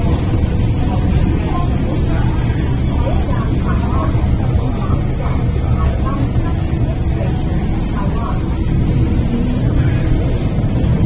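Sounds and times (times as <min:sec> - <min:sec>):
train running low rumble: 0:00.0 - 0:11.0.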